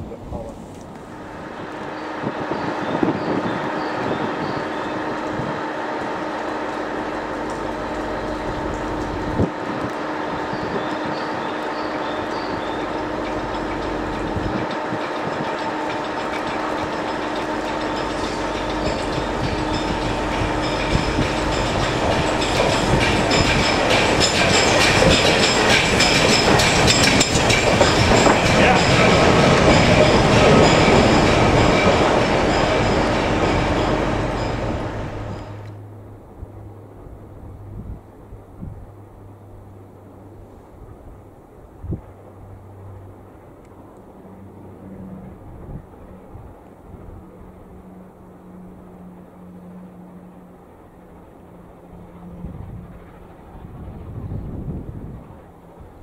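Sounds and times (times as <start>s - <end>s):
steam locomotive running slowly: 0.0s - 56.0s
wheels clicking over rail joints: 0.2s - 35.8s.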